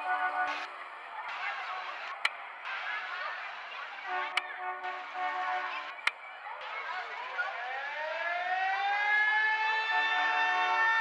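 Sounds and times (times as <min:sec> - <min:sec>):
police siren wailing: 0:06.5 - 0:11.0.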